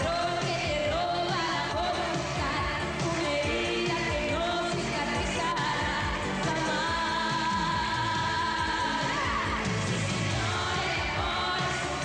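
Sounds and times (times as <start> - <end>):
woman singing pop song: 0.0 - 12.0.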